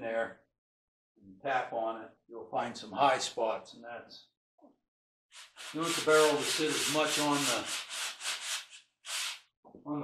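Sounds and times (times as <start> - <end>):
sandpaper rubbing on wood: 5.3 - 9.4.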